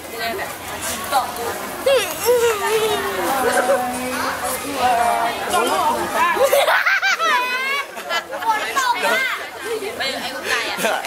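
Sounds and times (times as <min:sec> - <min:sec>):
children and adults chattering: 0:00.0 - 0:11.0
boy laughing high-pitched: 0:01.8 - 0:04.3, 0:06.4 - 0:08.5.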